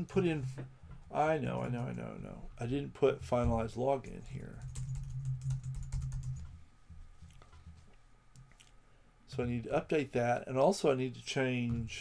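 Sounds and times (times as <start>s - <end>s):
typing on computer keyboard: 4.5s - 6.5s.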